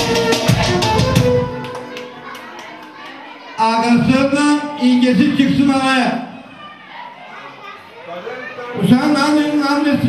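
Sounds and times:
background chatter of guests: 0.0 - 10.0
children's voices: 0.3 - 9.9
man speaking into a microphone: 3.6 - 6.4, 8.1 - 10.0.

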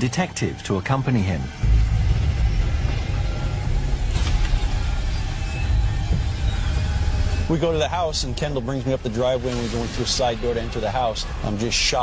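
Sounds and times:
car engine and road noise: 1.2 - 12.0.

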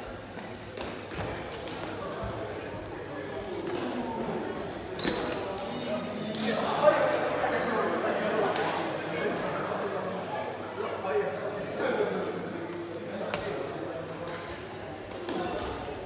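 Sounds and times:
voices in a sports hall: 0.0 - 16.0.

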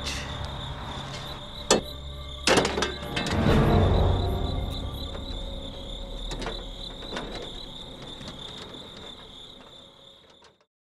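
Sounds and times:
crickets trilling: 0.0 - 10.7.

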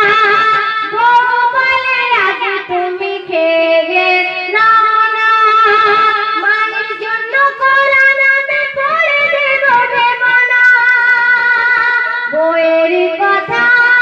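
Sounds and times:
woman singing into microphone: 0.0 - 14.0.

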